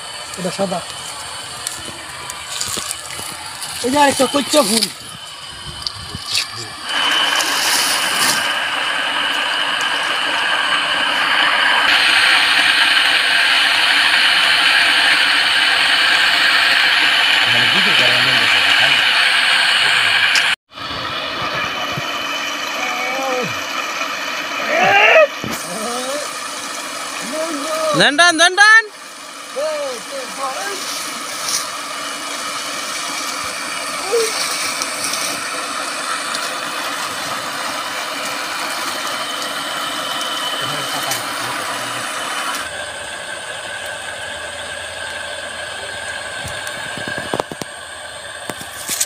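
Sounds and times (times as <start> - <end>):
small engine humming: 0.0 - 49.0
water pump running: 0.0 - 49.0.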